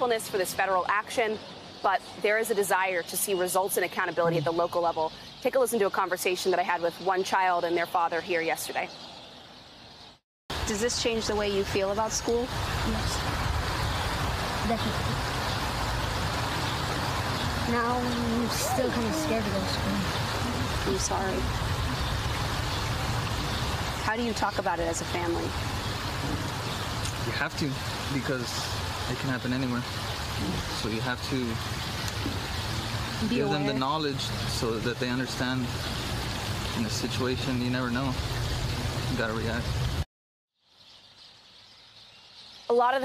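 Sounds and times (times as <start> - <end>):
outdoor background noise with hiss: 0.0 - 43.0.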